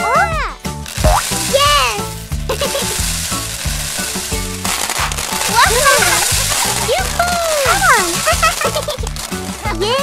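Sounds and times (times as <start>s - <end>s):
children's background music: 0.0s - 10.0s
plastic balls pouring: 0.8s - 10.0s.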